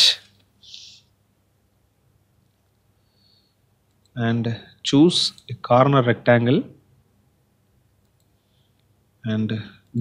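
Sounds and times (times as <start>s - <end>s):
faint computer mouse clicks: 8.0s - 8.9s.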